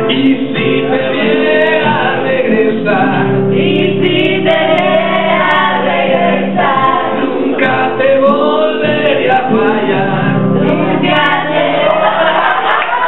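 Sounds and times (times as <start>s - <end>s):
man singing: 0.0s - 4.2s, 7.3s - 11.0s
acoustic guitar accompaniment: 0.0s - 13.0s.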